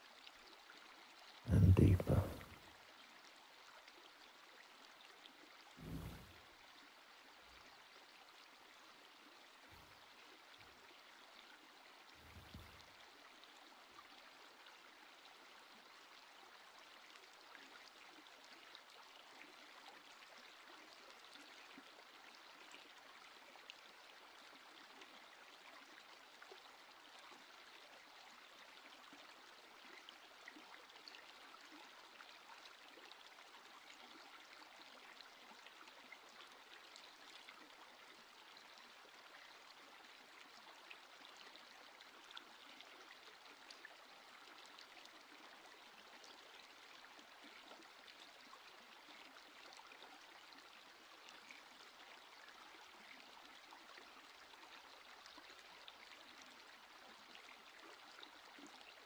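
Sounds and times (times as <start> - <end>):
gently flowing water trickling: 0.0 - 59.0
soft low thump: 5.8 - 6.4.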